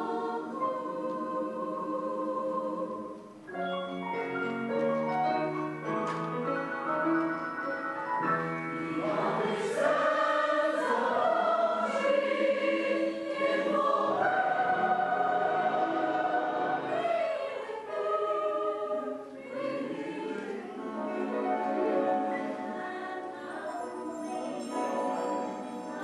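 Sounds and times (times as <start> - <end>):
mixed choir singing chords: 0.0 - 3.6, 8.2 - 26.0.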